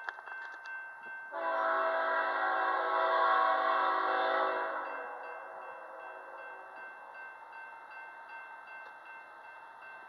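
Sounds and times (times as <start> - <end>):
locomotive air horn blast: 1.4 - 5.1.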